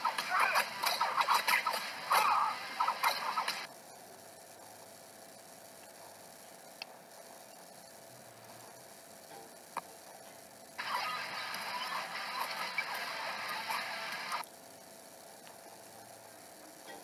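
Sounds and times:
tinny soundtrack from laptop speaker: 0.0s - 3.7s, 4.3s - 14.5s.

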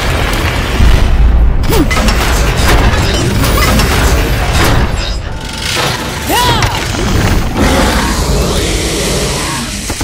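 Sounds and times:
explosion booming rumble: 0.0s - 3.0s
crackling debris: 0.0s - 10.0s.

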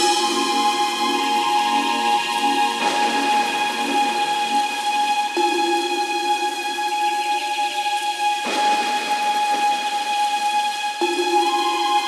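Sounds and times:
held synth chord: 0.0s - 6.2s
hissing noise wash: 0.0s - 12.0s.

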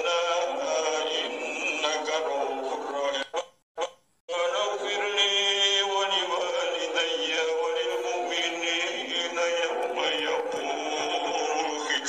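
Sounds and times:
man chanting melodic recitation: 4.3s - 12.0s.

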